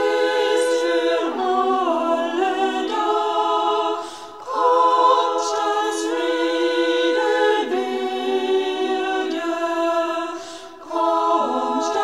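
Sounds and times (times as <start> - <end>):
women's choir singing a cappella: 0.0 - 12.0.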